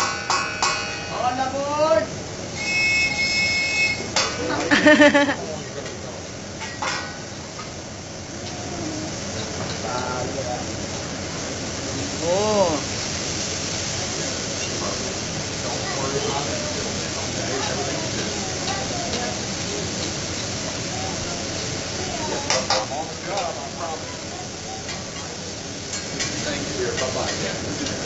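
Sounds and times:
food sizzling on griddle: 0:00.0 - 0:28.0.

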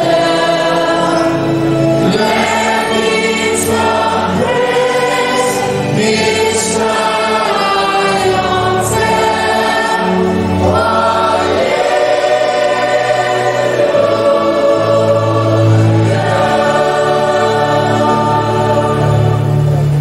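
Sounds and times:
choir singing a hymn: 0:00.0 - 0:20.0
low sustained notes: 0:00.0 - 0:20.0.

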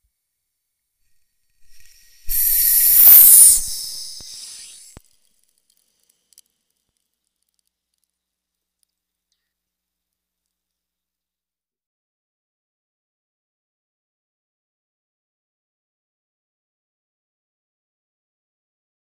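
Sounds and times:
high-pressure water venting hiss: 0:01.7 - 0:05.0
click: 0:01.8 - 0:08.1.

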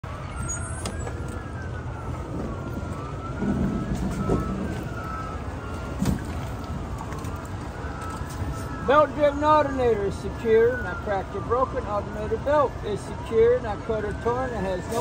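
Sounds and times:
distant siren wailing: 0:00.0 - 0:15.0.

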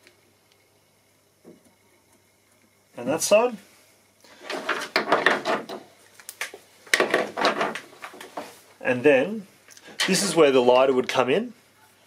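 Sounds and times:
rustling and scraping handling noise: 0:04.3 - 0:06.3, 0:06.9 - 0:08.8.

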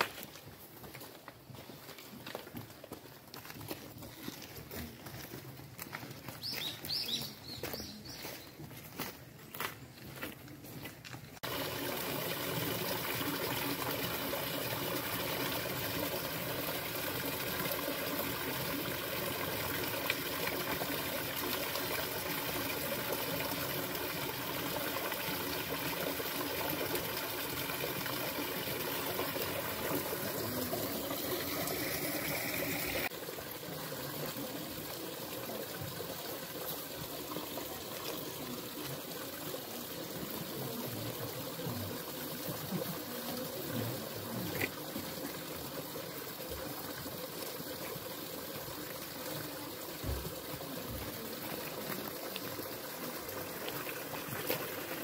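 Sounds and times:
waterfall trickling into pond: 0:10.1 - 0:55.0.

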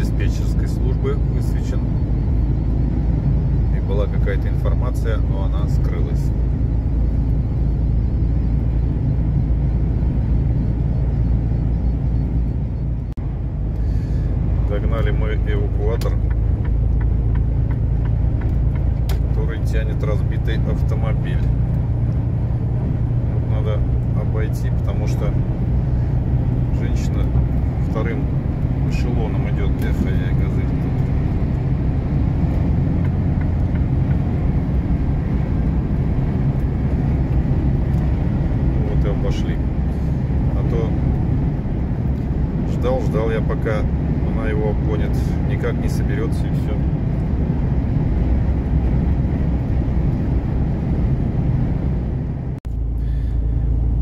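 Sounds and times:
truck engine and tyres droning: 0:00.0 - 0:54.0.

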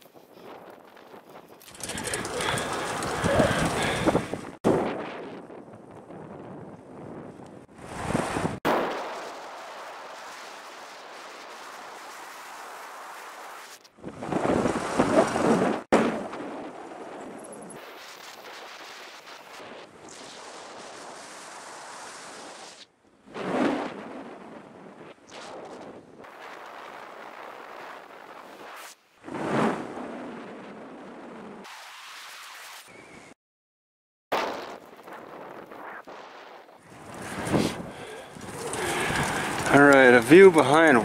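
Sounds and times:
wind buffeting microphone: 0:00.4 - 0:08.6, 0:35.0 - 0:41.0.

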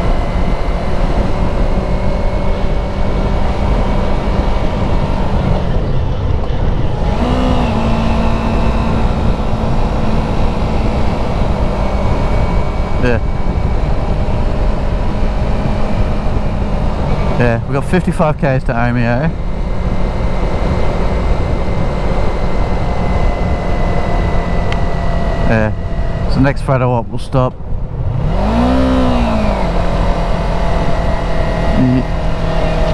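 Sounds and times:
motorcycle engine cruising: 0:00.0 - 0:32.9
wind noise: 0:00.0 - 0:32.9.

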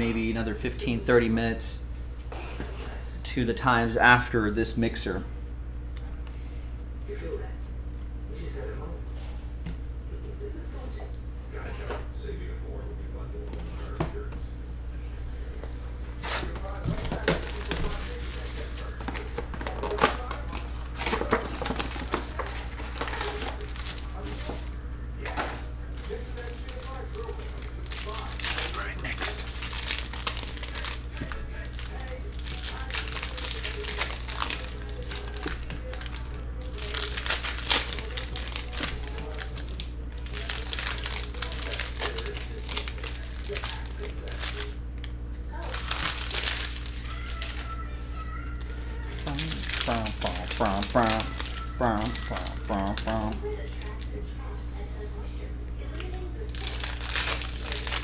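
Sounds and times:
steady low hum: 0:00.0 - 0:58.0
plastic and foil crinkling: 0:15.7 - 0:55.2, 0:55.8 - 0:58.0.

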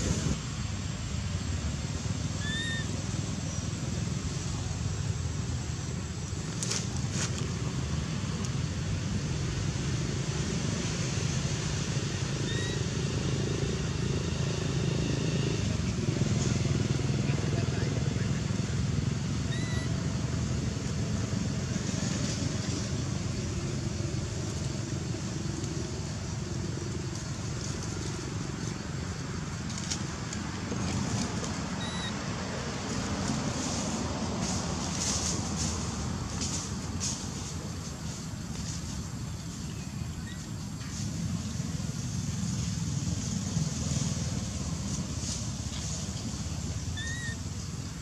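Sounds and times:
distant traffic rumble: 0:00.0 - 0:48.0.

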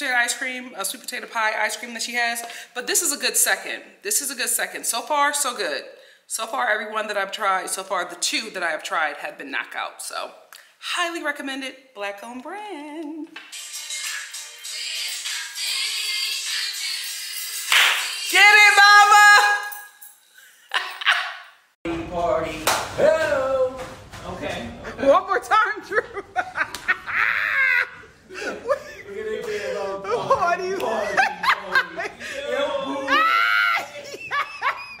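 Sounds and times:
people laughing: 0:25.8 - 0:35.0.

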